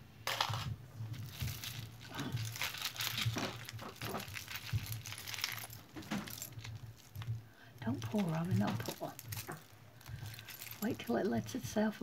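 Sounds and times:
metal jewelry jangling: 0:08.2 - 0:11.0.

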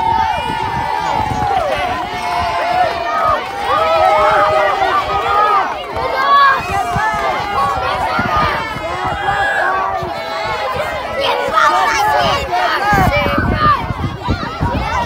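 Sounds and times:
young children shouting excitedly: 0:00.0 - 0:15.0.

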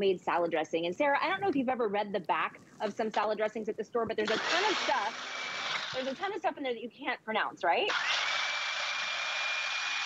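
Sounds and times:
blender motor whirring: 0:04.2 - 0:06.3, 0:07.9 - 0:10.0.

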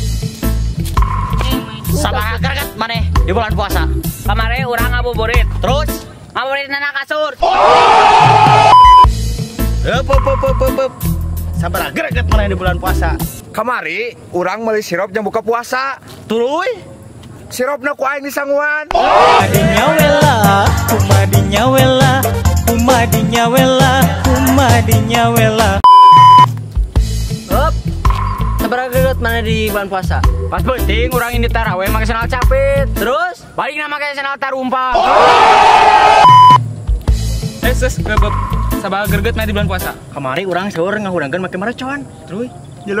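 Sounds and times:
bass-heavy hip-hop beat: 0:00.0 - 0:06.0, 0:08.8 - 0:13.4, 0:19.4 - 0:33.1, 0:36.4 - 0:40.0
soft low bass beats: 0:00.0 - 0:06.0, 0:08.9 - 0:13.4, 0:36.5 - 0:39.8
person yelling: 0:07.4 - 0:08.8, 0:18.9 - 0:19.8, 0:34.9 - 0:36.3
censor beep: 0:08.7 - 0:09.1, 0:25.8 - 0:26.5, 0:36.2 - 0:36.6.

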